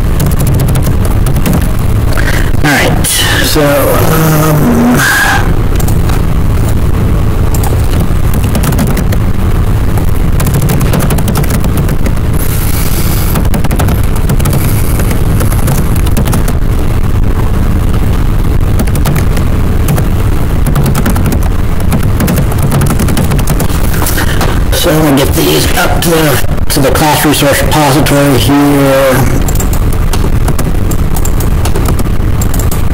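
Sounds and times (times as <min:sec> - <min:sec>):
faulty microphone crackling: 0:00.0 - 0:32.9.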